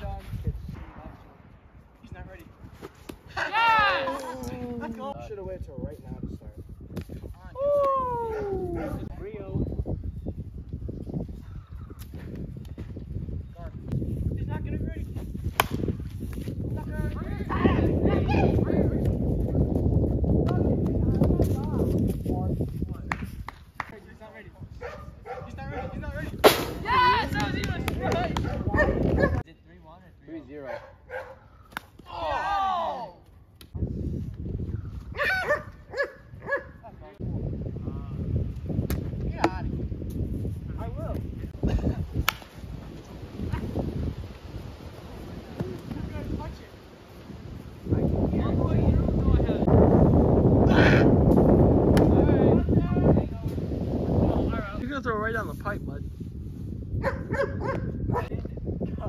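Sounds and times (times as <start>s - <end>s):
wind buffeting microphone: 0.0s - 32.7s, 33.4s - 59.0s
players calling and shouting: 2.1s - 5.2s, 7.4s - 9.1s, 23.8s - 29.5s, 30.4s - 33.8s
plastic bat hitting ball: 15.5s - 15.9s, 42.2s - 42.6s.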